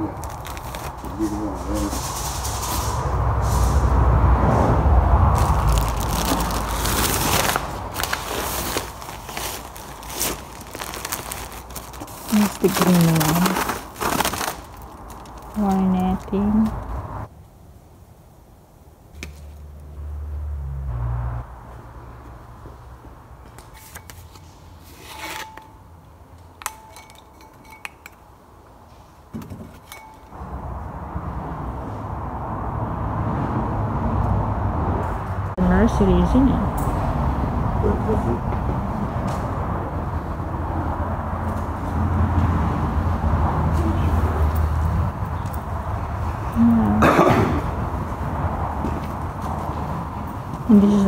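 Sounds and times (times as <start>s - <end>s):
plastic wrapping crinkling: 0.1s - 1.2s, 5.4s - 16.4s
low rumble: 1.8s - 8.3s
plant pot scraping on shelf: 23.8s - 25.8s.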